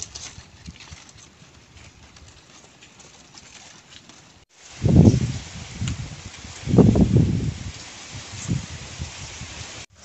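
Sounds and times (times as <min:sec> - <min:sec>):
palm-leaf strips rustling: 0:00.0 - 0:10.0.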